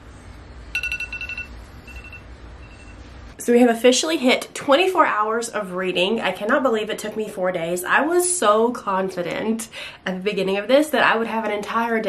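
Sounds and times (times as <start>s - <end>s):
phone timer alarm beeping: 0.8s - 3.0s.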